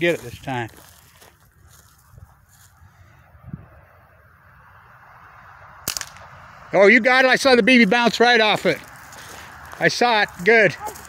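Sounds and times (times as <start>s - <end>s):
bb gun sharp crack: 5.8s - 6.5s.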